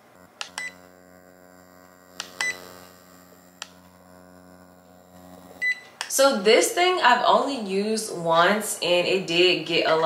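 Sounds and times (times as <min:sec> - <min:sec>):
electric hum of skin scrubber: 0:00.0 - 0:10.0.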